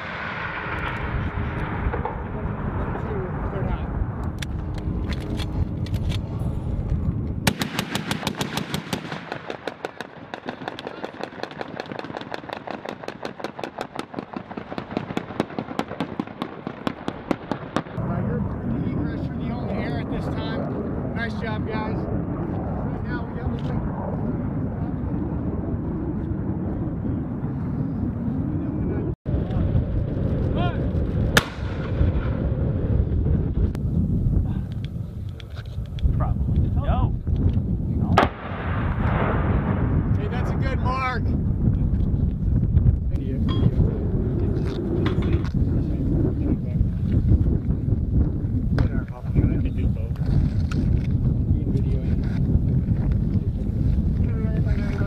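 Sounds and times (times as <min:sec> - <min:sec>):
helicopter turbine: 0:00.0 - 0:55.0
sharp crack: 0:07.4 - 0:18.0, 0:31.0 - 0:32.4, 0:38.1 - 0:40.4.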